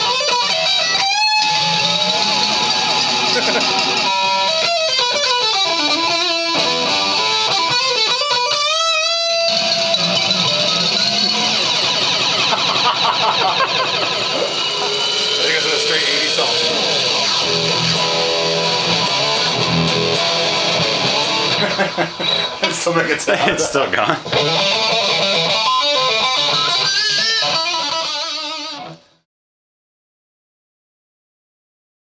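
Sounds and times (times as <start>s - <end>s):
electric guitar with effects: 0.0s - 22.7s, 24.2s - 29.2s.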